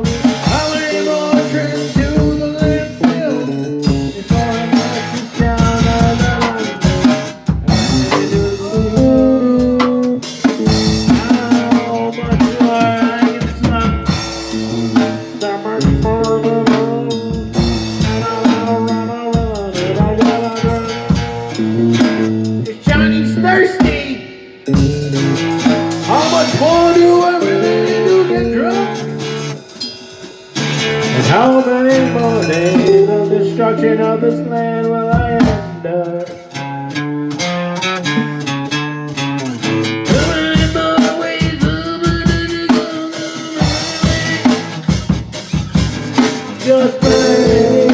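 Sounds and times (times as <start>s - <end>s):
drum kit steady beat: 0.0s - 47.9s
guitars bending notes: 0.0s - 47.9s
rock band instrumental: 0.0s - 47.9s.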